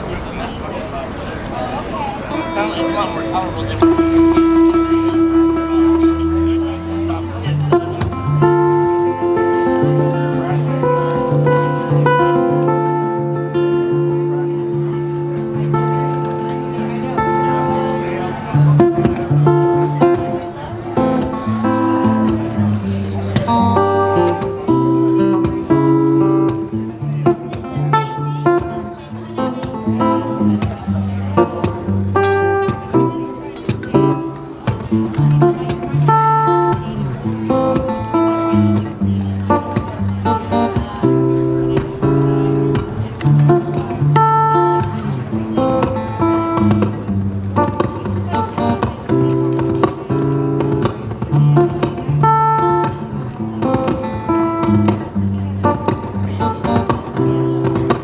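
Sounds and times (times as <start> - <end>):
acoustic guitar playing: 1.7 - 58.0
looped guitar and percussion: 2.2 - 58.0.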